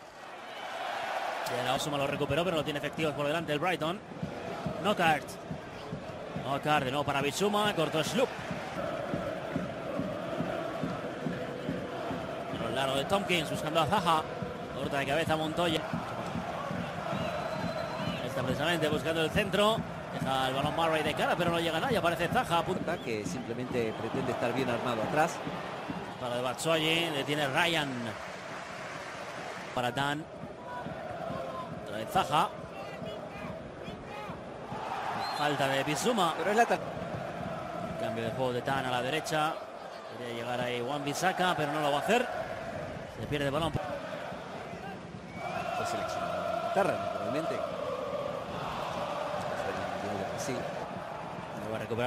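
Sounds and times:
stadium crowd chanting and singing: 0.1s - 52.0s.

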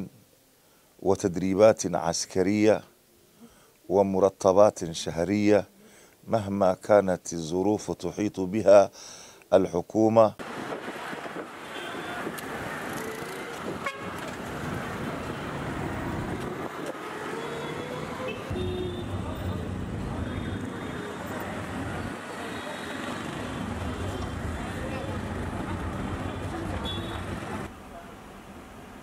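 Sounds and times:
street traffic driving past: 10.4s - 29.0s
short horn toots: 13.8s - 14.2s.

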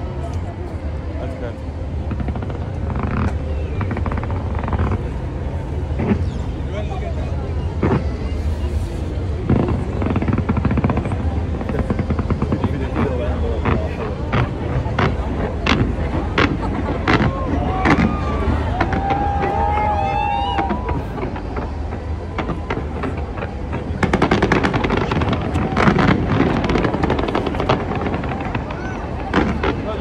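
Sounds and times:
crowd voices: 0.0s - 30.0s
low rumble: 0.0s - 30.0s
fireworks bangs and cracks: 1.9s - 6.6s, 7.3s - 30.0s.

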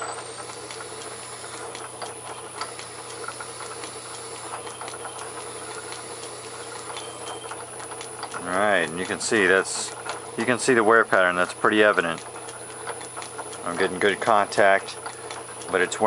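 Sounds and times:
metal lathe humming: 0.0s - 16.0s
lapping grit grinding: 0.6s - 16.0s.

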